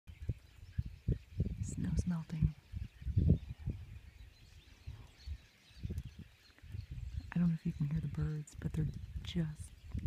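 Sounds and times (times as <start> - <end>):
birds calling: 0.1 - 10.0.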